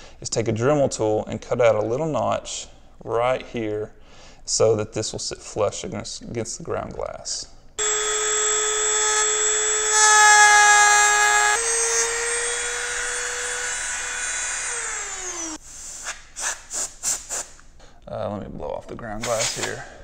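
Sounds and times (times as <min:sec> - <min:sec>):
rotary tool whining: 0:07.8 - 0:15.6.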